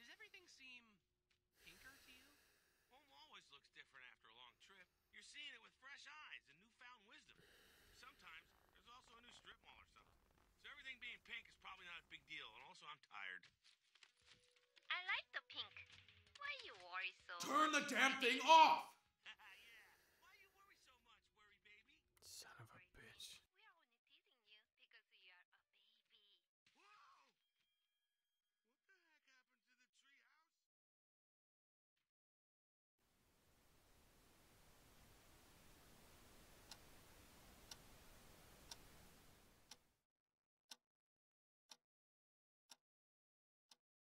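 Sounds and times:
wall clock ticking: 0:17.4 - 0:18.8, 0:34.7 - 0:39.8
faint whispering: 0:22.2 - 0:23.4
low background noise: 0:33.7 - 0:39.7
tv static hiss: 0:33.9 - 0:39.7.

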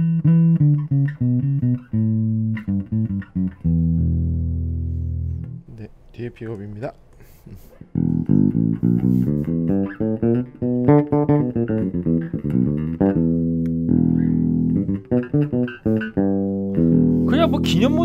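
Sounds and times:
plucked bass guitar notes: 0:00.0 - 0:05.8, 0:07.9 - 0:18.0.

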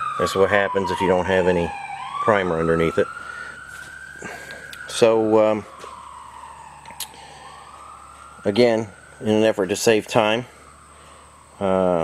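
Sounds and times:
siren wailing faintly: 0:00.0 - 0:12.0.

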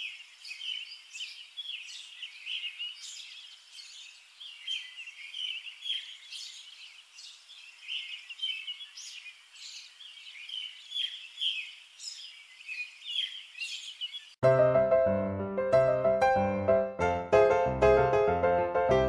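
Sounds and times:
songbirds chirping and singing: 0:00.0 - 0:14.4.

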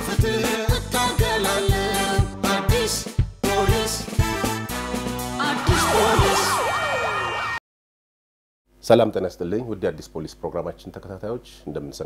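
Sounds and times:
intro music: 0:00.9 - 0:07.6
siren sound effect wailing: 0:05.3 - 0:07.6.

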